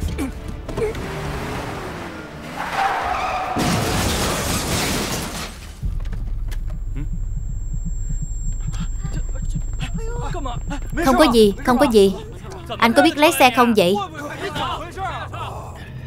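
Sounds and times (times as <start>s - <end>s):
metal crash and breaking glass: 3.6s - 5.7s.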